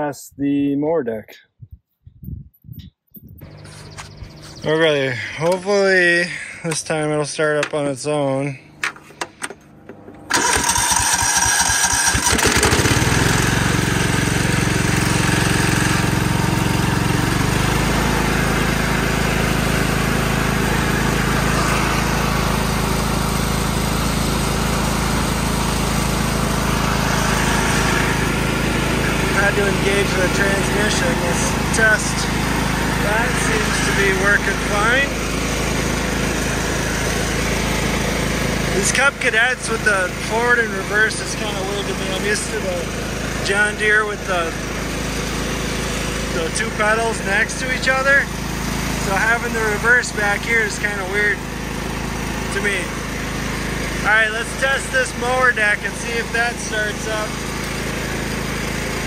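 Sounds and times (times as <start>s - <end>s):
mower engine running: 3.4s - 59.0s
mower engine cranking: 5.3s - 6.9s, 8.8s - 59.0s.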